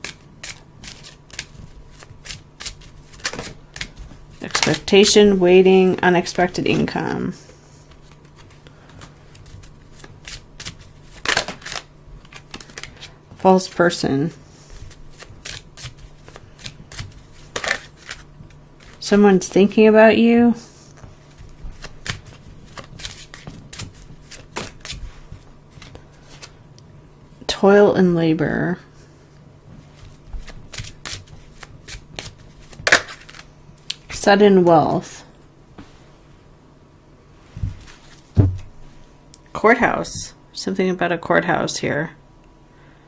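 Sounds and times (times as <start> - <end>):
cards being shuffled: 0.0 - 5.4, 7.9 - 13.9, 14.6 - 19.1, 20.9 - 26.6, 29.8 - 34.2.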